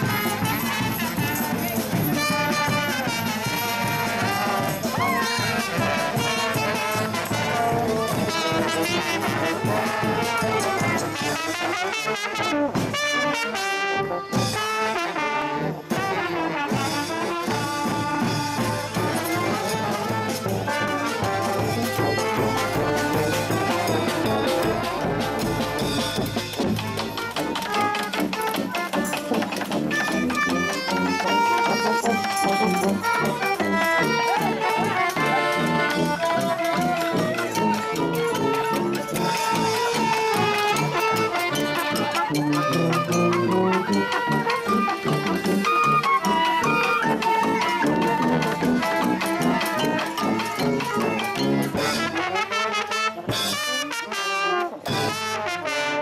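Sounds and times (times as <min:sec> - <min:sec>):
bright trumpet: 0:00.0 - 0:56.0
street band playing: 0:00.0 - 0:56.0
tuba line: 0:00.0 - 0:56.0.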